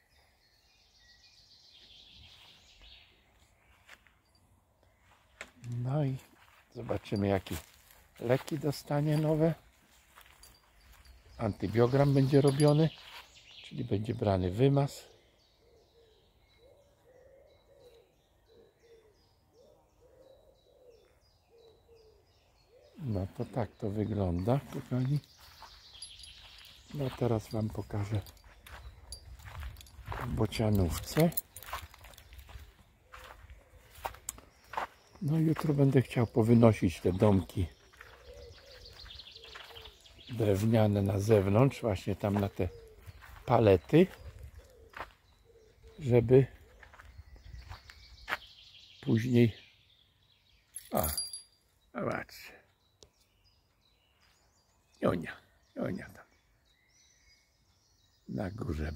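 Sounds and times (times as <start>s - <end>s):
small bird chirping: 9.0s - 13.9s, 15.2s - 36.5s, 37.2s - 58.9s
low cooing bird call: 15.0s - 36.6s, 37.2s - 48.3s.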